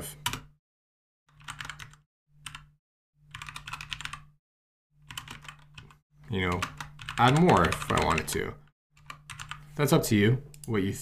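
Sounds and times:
keyboard typing: 0:01.3 - 0:02.7, 0:03.3 - 0:04.3, 0:05.0 - 0:08.4, 0:09.0 - 0:09.7.

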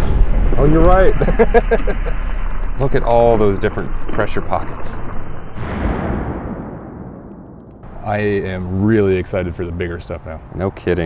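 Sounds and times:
explosion boom with rumble: 0:00.0 - 0:08.0.

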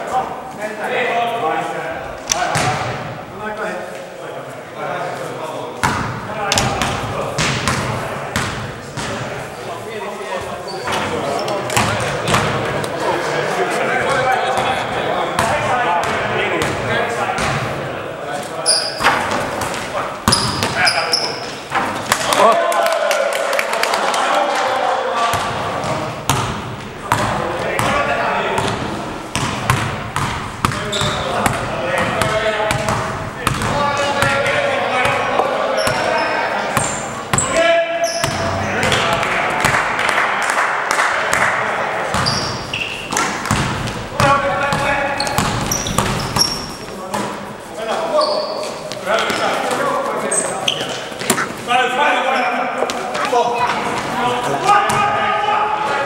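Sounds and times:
sneakers squeaking: 0:05.8 - 0:09.6, 0:10.3 - 0:12.8, 0:18.4 - 0:22.4, 0:25.3 - 0:34.4, 0:35.0 - 0:39.0, 0:42.1 - 0:51.7, 0:52.3 - 0:54.2
players calling out: 0:06.3 - 0:56.0
basketball bouncing on floor: 0:29.4 - 0:34.3, 0:43.1 - 0:46.6.

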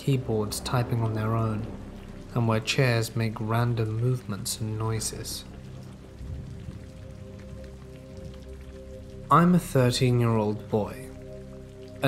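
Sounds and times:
soft background music: 0:00.0 - 0:12.0
steady rain falling: 0:00.0 - 0:12.0.

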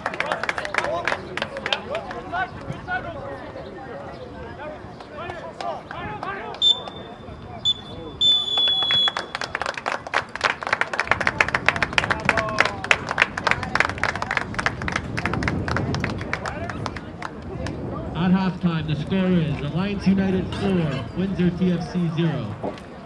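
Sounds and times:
spectators clapping: 0:00.0 - 0:02.8, 0:05.0 - 0:07.0, 0:08.5 - 0:17.9
referee's whistle blasts: 0:06.6 - 0:09.5.

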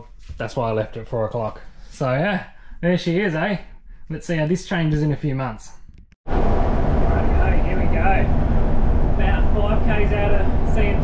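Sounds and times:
bus engine rumble: 0:06.3 - 0:11.0
road noise: 0:06.3 - 0:11.0.

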